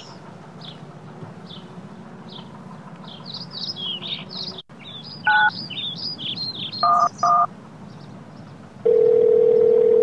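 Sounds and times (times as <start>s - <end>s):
small birds chirping: 0.0s - 8.7s
two-tone phone keypad beep: 6.8s - 7.5s.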